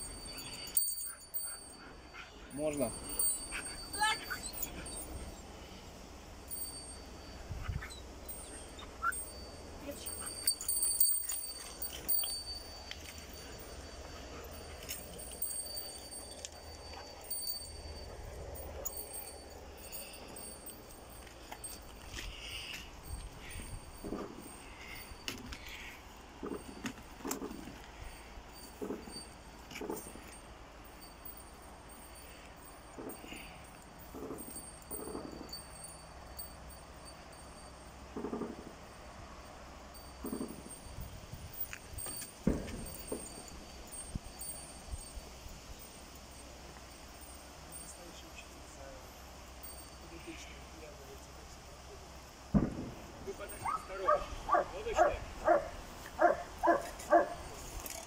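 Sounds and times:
wind rumble on microphone: 0:07.4 - 0:08.1.

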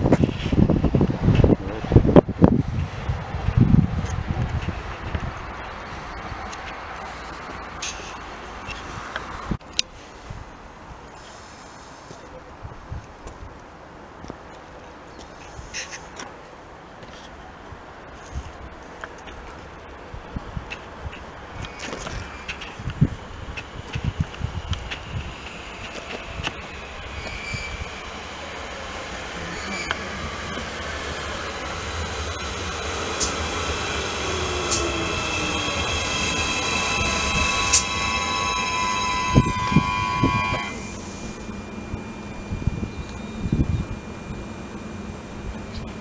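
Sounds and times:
standing train hum: 0:00.0 - 0:46.0
electric train motor whine: 0:03.6 - 0:09.6, 0:21.6 - 0:46.0
train brake squeal: 0:25.0 - 0:43.8.

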